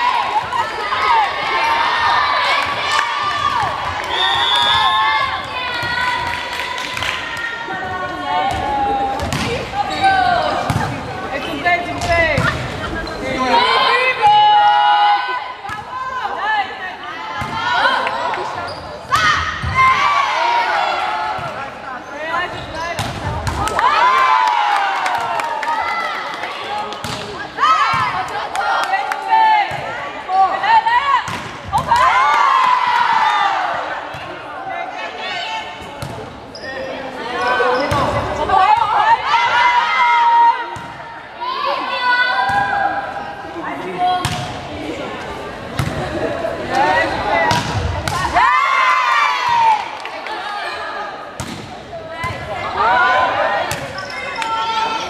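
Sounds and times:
volleyball hits: 47.4s - 48.4s, 51.4s - 52.6s, 53.6s - 55.0s.

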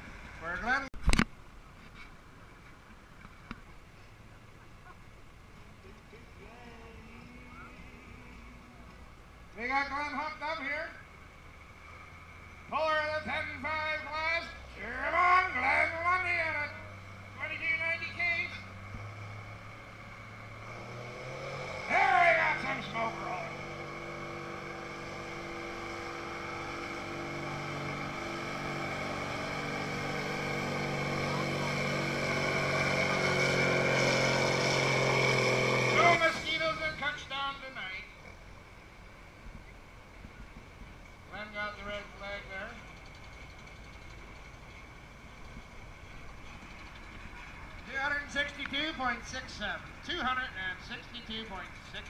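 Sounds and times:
tractor engine under full load: 11.5s - 38.8s, 39.8s - 52.0s.

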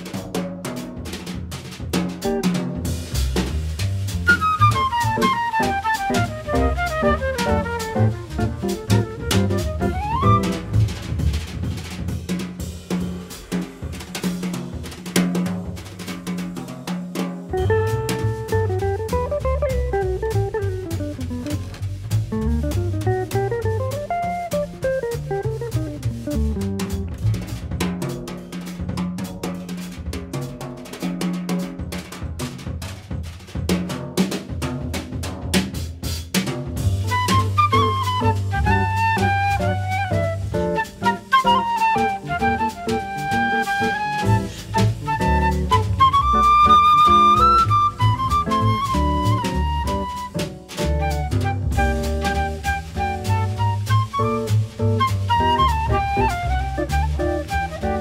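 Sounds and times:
jazz drum kit played with sticks: 0.0s - 58.0s
low bass notes: 3.3s - 11.5s, 17.6s - 27.7s.

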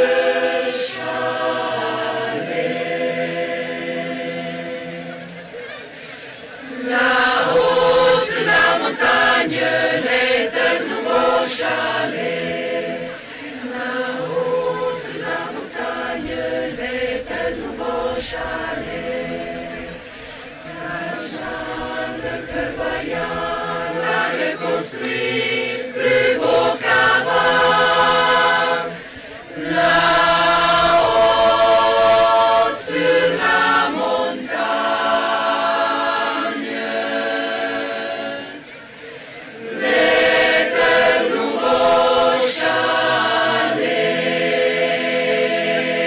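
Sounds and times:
choir singing held notes: 0.0s - 46.0s.

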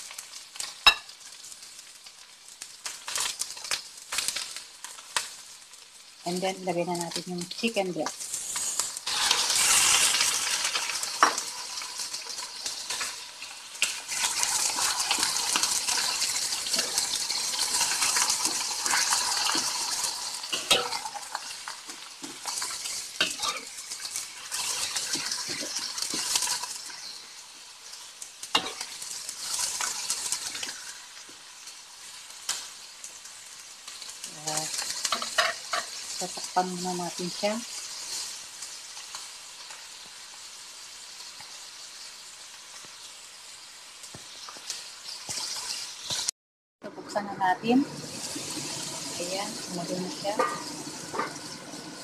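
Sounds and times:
chicken sizzling in hot oil: 0.0s - 52.0s.

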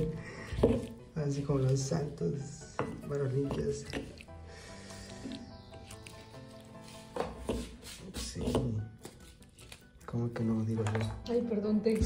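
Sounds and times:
stone pestle grinding in stone bowl: 0.0s - 1.0s, 2.8s - 4.3s
background music with held notes: 0.0s - 12.0s.

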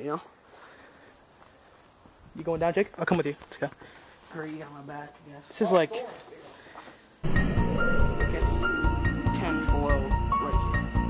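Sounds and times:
insects droning: 0.0s - 11.0s.

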